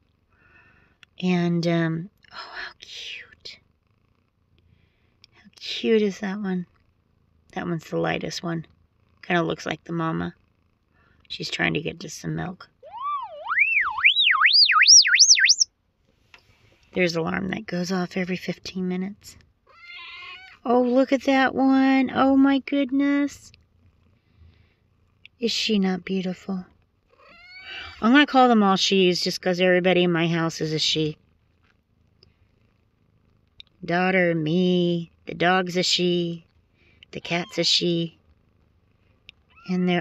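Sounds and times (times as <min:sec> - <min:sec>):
cat purring: 0:00.0 - 0:13.5, 0:16.9 - 0:40.0
woman speaking: 0:01.2 - 0:03.6, 0:05.3 - 0:06.7, 0:07.6 - 0:08.7, 0:09.3 - 0:10.4, 0:11.3 - 0:12.8, 0:17.0 - 0:19.4, 0:20.6 - 0:23.5, 0:25.4 - 0:26.7, 0:27.7 - 0:31.2, 0:33.8 - 0:36.4, 0:37.1 - 0:38.2, 0:39.7 - 0:40.0
warbling electronic alarm tone: 0:12.8 - 0:15.7
faint ticks: 0:31.4 - 0:33.8, 0:39.0 - 0:39.6.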